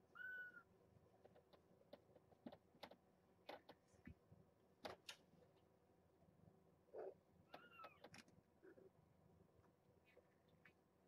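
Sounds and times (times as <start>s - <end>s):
faint clicks and taps: 1.1s - 4.2s.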